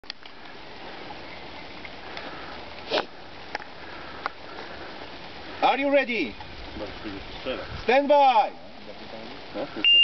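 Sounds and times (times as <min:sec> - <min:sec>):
background hiss: 0:00.0 - 0:10.0
person sniffing: 0:02.2 - 0:03.2
faint clicks: 0:03.5 - 0:04.7.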